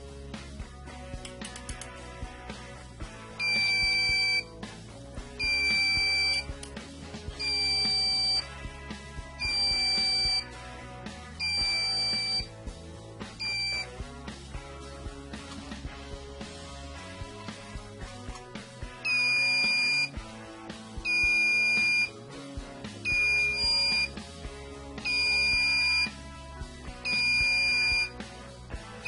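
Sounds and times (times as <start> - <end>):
background music: 0.0 - 29.0
high-pitched buzzer beep: 3.4 - 4.4, 5.4 - 6.5, 7.4 - 8.4, 9.4 - 10.4, 11.4 - 12.5, 13.4 - 13.9, 19.1 - 20.1, 21.1 - 22.1, 23.1 - 24.1, 25.0 - 26.1, 27.1 - 28.2.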